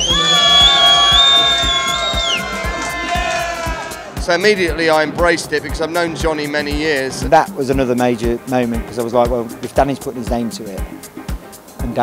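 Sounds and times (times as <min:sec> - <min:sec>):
long high held shout: 0:00.0 - 0:04.2
club crowd cheering: 0:00.0 - 0:04.8
house music with kick drum: 0:00.0 - 0:04.9.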